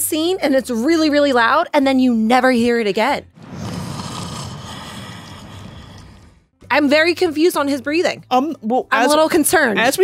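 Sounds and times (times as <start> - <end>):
long loud breath: 3.6 - 6.5.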